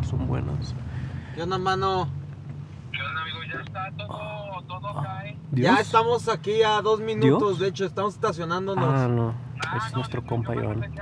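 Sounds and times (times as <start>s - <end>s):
car engine hum: 0.0s - 11.0s.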